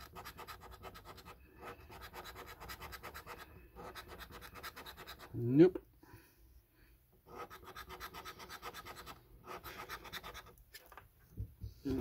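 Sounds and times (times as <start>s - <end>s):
scratchcard being scratched: 0.0s - 5.4s, 7.3s - 10.6s.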